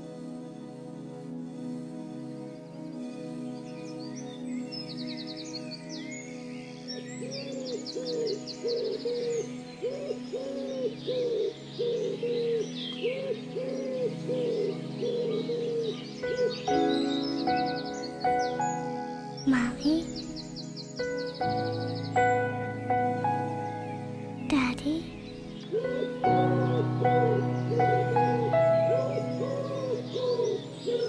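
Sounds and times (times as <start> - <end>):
high twittering bird calls: 4.0 - 31.0
low cooing bird calls: 7.0 - 23.2, 25.1 - 31.0
sustained keyboard chords: 13.9 - 31.0.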